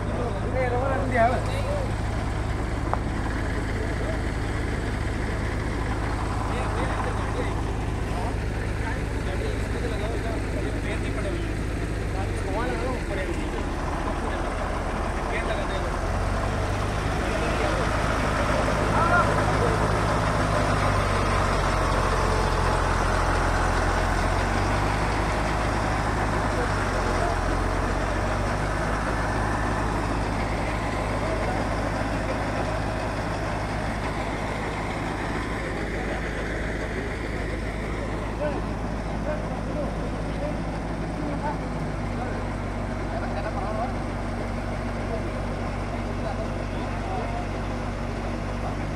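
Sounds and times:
crowd chatter: 0:00.0 - 0:48.9
diesel engines running: 0:00.0 - 0:48.9.

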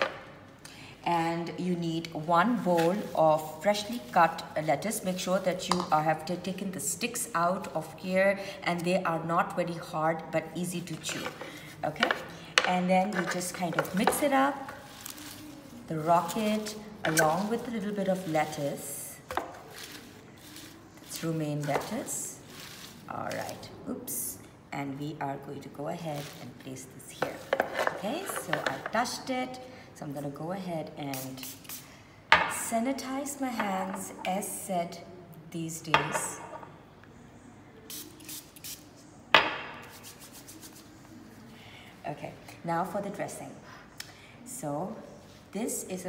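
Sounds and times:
faint rustling of leaves: 0:14.8 - 0:15.9, 0:19.6 - 0:23.7.

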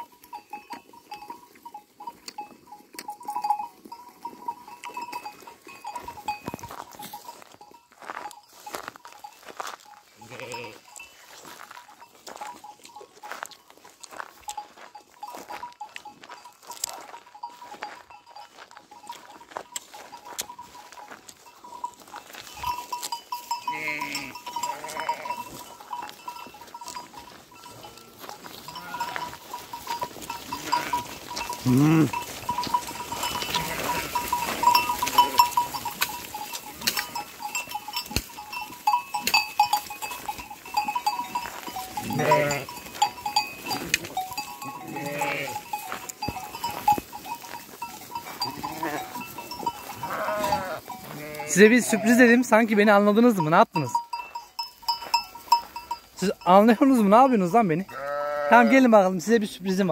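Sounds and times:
bells ringing on flock: 0:00.0 - 0:59.9
sheep bleating: 0:10.2 - 0:11.0, 0:23.5 - 0:25.7, 0:27.6 - 0:35.8, 0:41.8 - 0:46.0, 0:48.2 - 0:52.5, 0:57.8 - 0:59.0.

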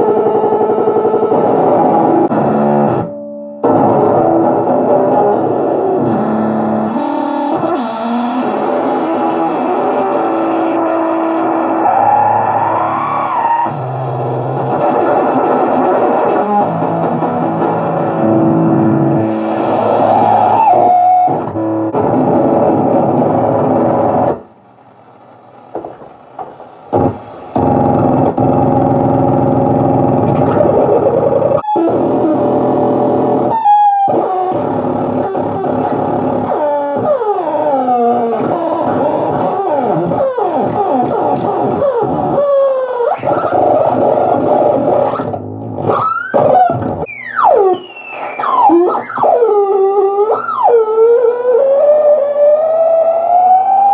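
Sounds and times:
fuzz electric guitar: 0:00.0 - 0:24.5, 0:26.9 - 0:53.9
squealing oscillator pitches: 0:05.4 - 0:22.0, 0:23.1 - 0:53.9.

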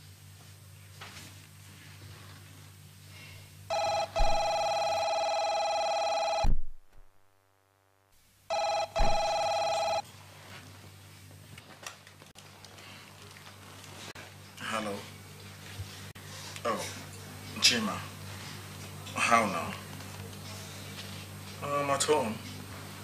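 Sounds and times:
electronic desk telephone ringing: 0:03.7 - 0:06.5, 0:08.5 - 0:10.0.

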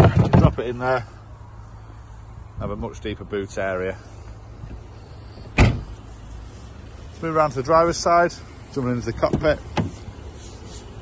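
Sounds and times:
car tailgate thud: 0:05.5 - 0:06.0.

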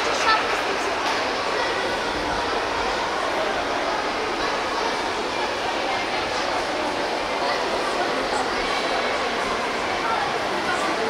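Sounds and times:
spectators' voices: 0:00.0 - 0:11.0.

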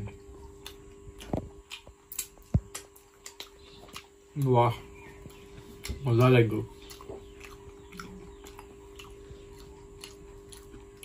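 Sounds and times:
faint steady hum: 0:00.0 - 0:11.0
wet chewing smacks: 0:00.4 - 0:11.0.

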